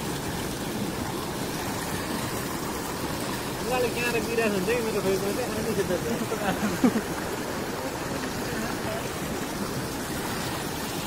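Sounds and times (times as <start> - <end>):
stream splashing over rock: 0.0 - 11.0.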